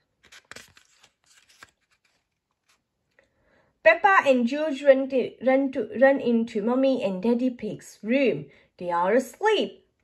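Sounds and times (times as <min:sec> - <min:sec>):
paper page rustling: 0:00.1 - 0:02.9.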